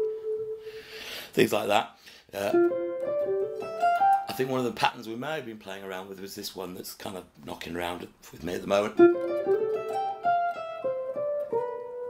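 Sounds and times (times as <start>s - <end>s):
electric guitar single-note line: 0.0s - 0.8s, 2.4s - 4.4s, 9.0s - 12.0s.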